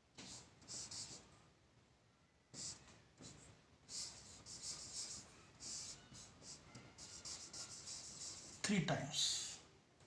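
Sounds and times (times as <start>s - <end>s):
marker pen scratching on board: 0.2s - 1.3s, 2.5s - 8.7s.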